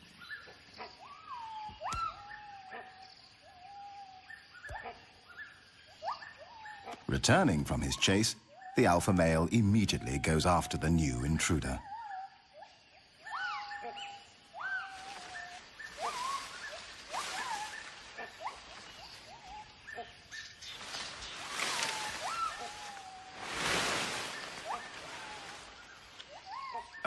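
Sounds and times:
gibbon hooting calls: 0:11.8 - 0:20.5, 0:21.7 - 0:23.5, 0:24.5 - 0:27.0
leafy branches shaking: 0:14.8 - 0:26.8.

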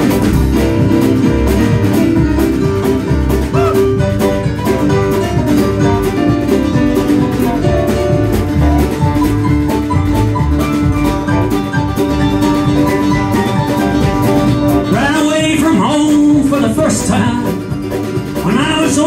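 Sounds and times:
banjo: 0:00.0 - 0:19.0
live bluegrass band playing: 0:00.0 - 0:19.0
steady drum beat: 0:00.0 - 0:19.0.

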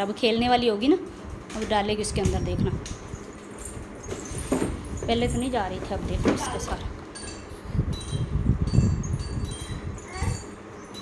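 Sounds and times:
toy chime notes tinkling: 0:07.1 - 0:11.0.

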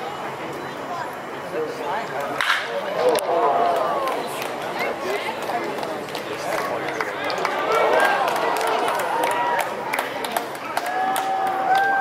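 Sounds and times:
crowd talking indistinctly: 0:00.0 - 0:12.0.

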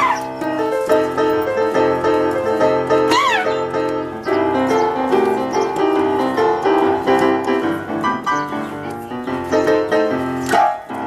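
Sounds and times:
upright piano playing blues: 0:00.0 - 0:11.0.

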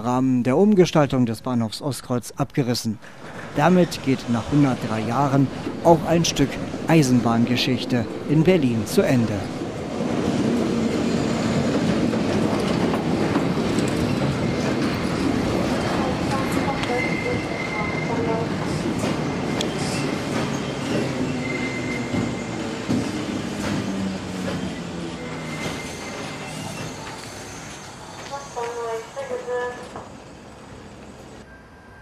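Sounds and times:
train wheels rumbling on rails: 0:03.1 - 0:31.4
high wheel squeal: 0:16.5 - 0:18.5, 0:19.5 - 0:23.2, 0:24.5 - 0:29.2.

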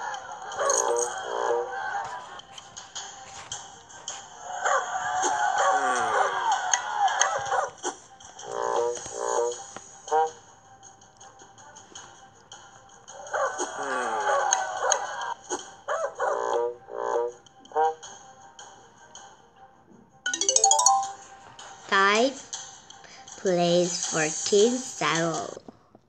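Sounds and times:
rising chime jingle: 0:20.3 - 0:21.4.

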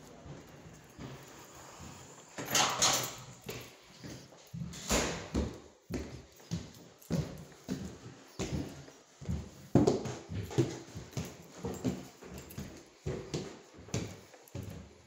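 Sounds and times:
footsteps on hard floor: 0:00.0 - 0:15.0.

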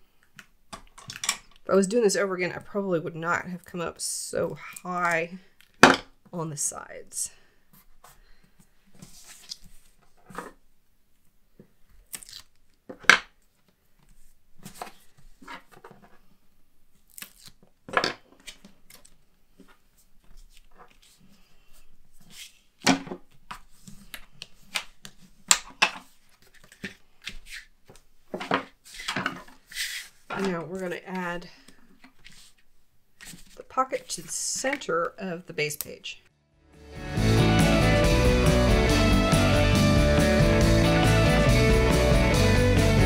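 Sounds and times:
person speaking: 0:01.7 - 0:05.6, 0:06.3 - 0:07.5, 0:30.3 - 0:31.8, 0:33.5 - 0:37.8
paper rustling: 0:08.9 - 0:10.6, 0:18.4 - 0:30.8, 0:31.6 - 0:34.8.

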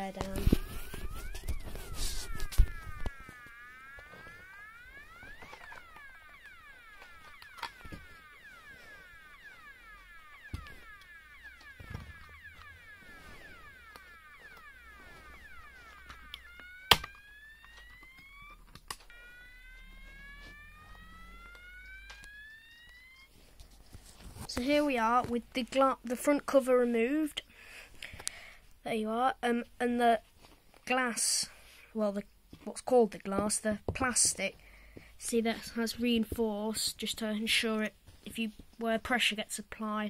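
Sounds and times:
fire alarm warble and whoop: 0:00.3 - 0:23.6.

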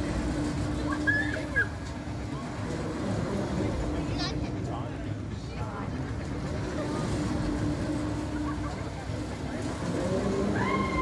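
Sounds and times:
pendulum ride rumbling: 0:00.0 - 0:11.0.

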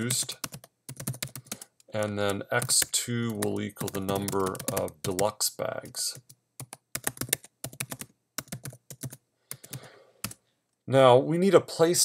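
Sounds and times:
typing on computer keyboard: 0:00.0 - 0:05.3, 0:06.2 - 0:10.4.

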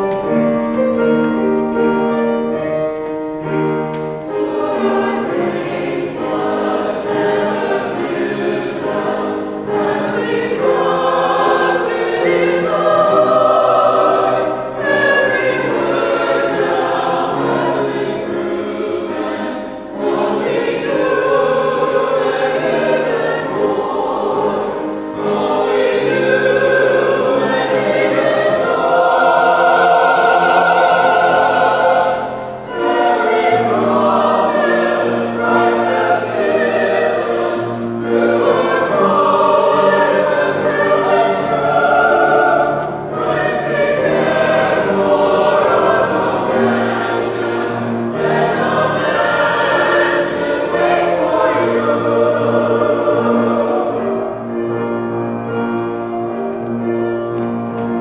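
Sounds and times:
choir singing: 0:00.0 - 0:58.0.

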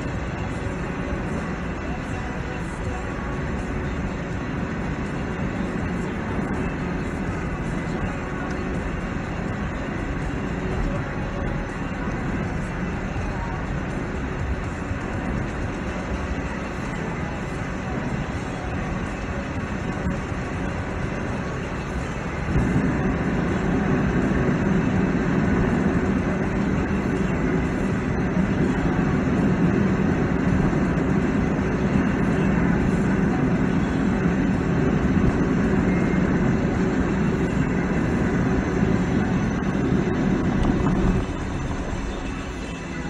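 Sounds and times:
tyres and engine rumble in car cabin: 0:00.0 - 0:43.0.

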